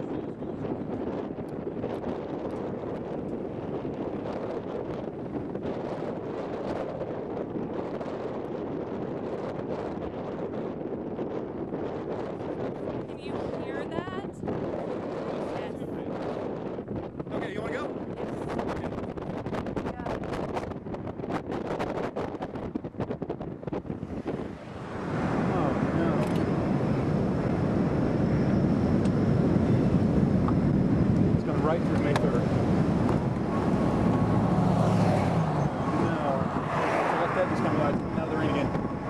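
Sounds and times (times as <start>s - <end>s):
wind buffeting microphone: 0.0s - 39.0s
vehicle road noise: 21.6s - 39.0s.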